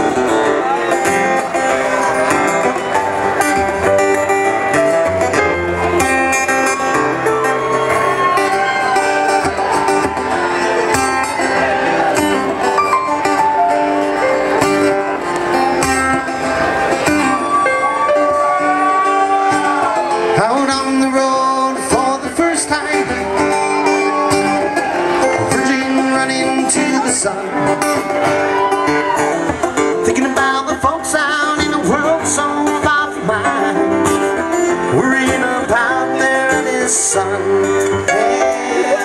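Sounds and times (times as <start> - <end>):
live band with acoustic guitar: 0.0 - 39.0.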